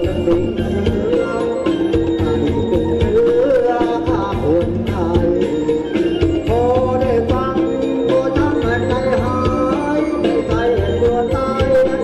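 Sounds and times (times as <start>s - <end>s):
live band dance music: 0.0s - 12.0s
person singing gliding melody: 0.0s - 12.0s.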